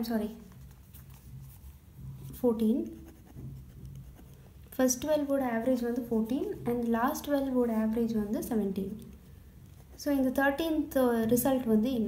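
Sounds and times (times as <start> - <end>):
ballpoint pen scratching on paper: 1.0 - 5.0, 9.6 - 10.5.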